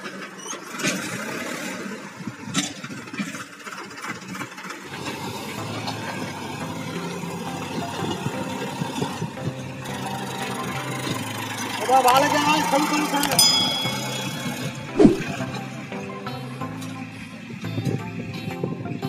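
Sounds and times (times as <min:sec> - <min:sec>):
tractor diesel engine running: 0:00.0 - 0:18.9.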